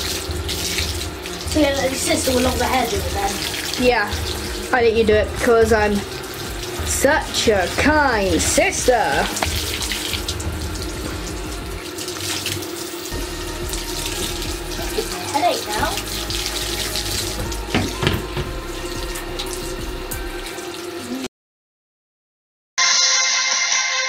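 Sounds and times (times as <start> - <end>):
shower water running into bathtub: 0.0 - 21.3.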